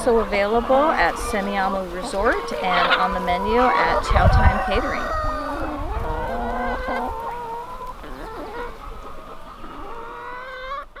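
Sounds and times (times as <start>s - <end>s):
hens clucking and calling: 0.0s - 11.0s.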